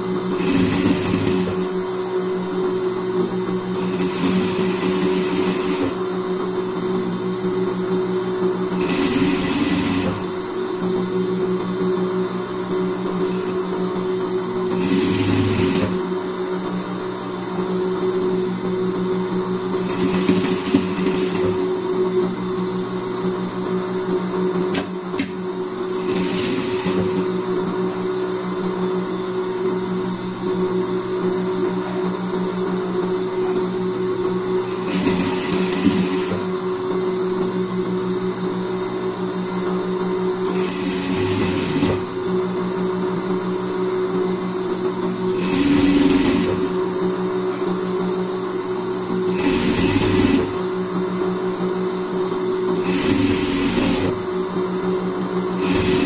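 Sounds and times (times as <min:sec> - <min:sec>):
sewing machine stitching: 0:00.2 - 0:01.8, 0:03.6 - 0:06.1, 0:08.7 - 0:10.4, 0:13.1 - 0:13.6, 0:14.6 - 0:16.0, 0:19.7 - 0:21.8, 0:24.7 - 0:27.4, 0:34.6 - 0:36.6, 0:40.5 - 0:42.4, 0:45.2 - 0:46.9, 0:49.2 - 0:50.7, 0:52.7 - 0:54.4, 0:55.5 - 0:56.0.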